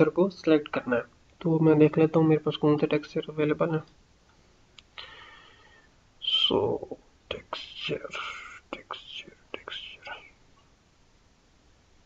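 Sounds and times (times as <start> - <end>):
faint background hiss: 0.0 - 12.0
person whispering: 6.2 - 10.4.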